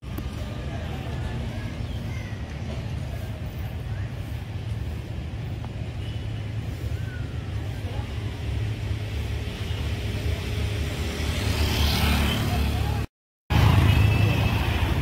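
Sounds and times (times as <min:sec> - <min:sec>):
traffic motor rumble: 0:00.0 - 0:15.0
motorcycle passing: 0:10.3 - 0:15.0.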